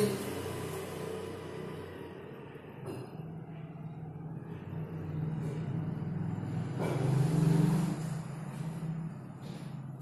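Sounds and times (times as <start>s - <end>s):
motor vehicle passing: 0.0s - 10.0s.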